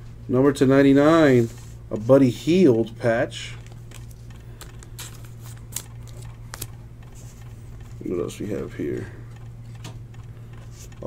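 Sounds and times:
steady low hum: 0:00.0 - 0:11.0
trading cards clicking on table: 0:03.6 - 0:08.0.

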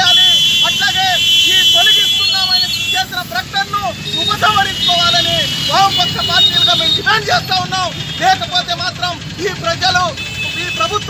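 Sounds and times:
man speaking loudly: 0:00.0 - 0:11.0.

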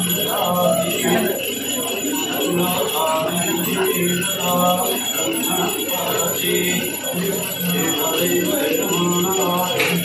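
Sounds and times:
temple bells ringing: 0:00.0 - 0:10.0.

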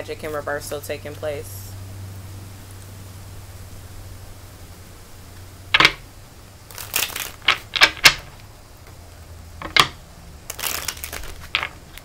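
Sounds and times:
cards being shuffled: 0:05.8 - 0:06.0, 0:06.7 - 0:08.5, 0:09.6 - 0:12.0.

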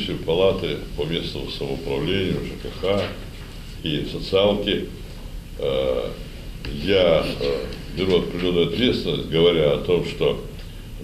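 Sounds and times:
man speaking with hesitation: 0:00.0 - 0:05.0, 0:05.6 - 0:10.6.

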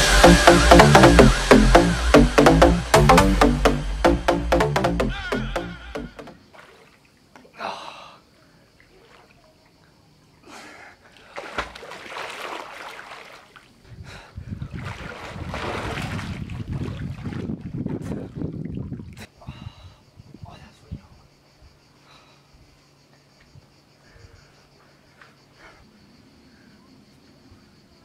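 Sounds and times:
person swimming and splashing: 0:00.1 - 0:07.5, 0:11.1 - 0:13.8, 0:14.6 - 0:19.1.

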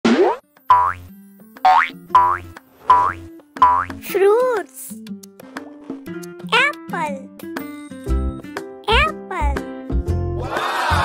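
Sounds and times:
light background music: 0:00.2 - 0:11.0
cartoon boing effects: 0:01.7 - 0:04.0.

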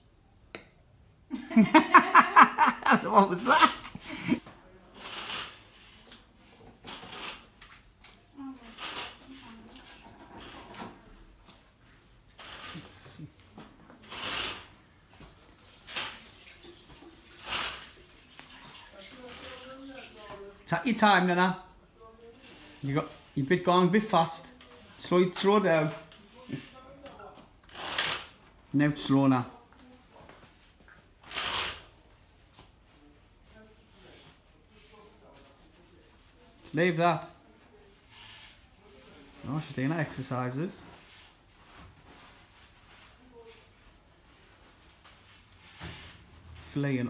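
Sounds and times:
walking frame scraping on floor: 0:04.9 - 0:20.4, 0:38.0 - 0:46.8.

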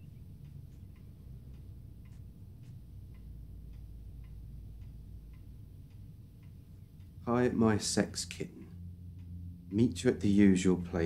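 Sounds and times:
faint regular ticking: 0:00.0 - 0:11.0
low steady hum: 0:00.0 - 0:11.0.

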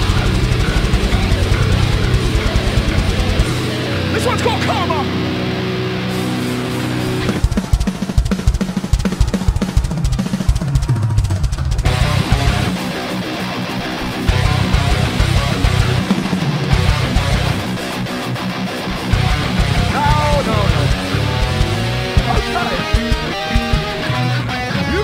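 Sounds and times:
drum kit: 0:00.0 - 0:05.3, 0:06.1 - 0:24.4
distorted electric guitars: 0:00.0 - 0:25.0
kick drums: 0:07.4 - 0:12.6, 0:20.8 - 0:24.1.

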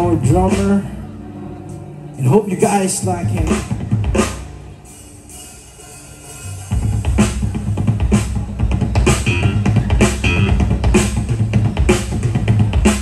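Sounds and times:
live rock band playing: 0:00.0 - 0:01.0, 0:02.6 - 0:13.0.

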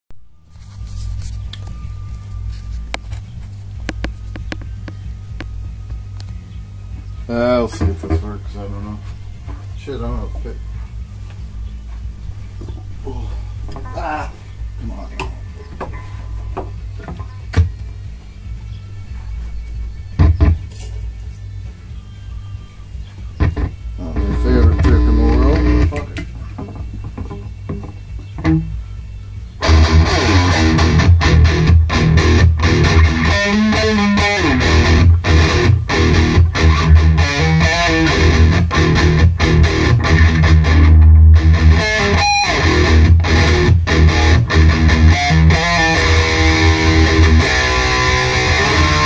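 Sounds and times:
guitar amplifier hum: 0:00.1 - 0:49.0
faint thin whine: 0:00.2 - 0:17.0
sharp knocks and clunks: 0:26.1 - 0:28.6.

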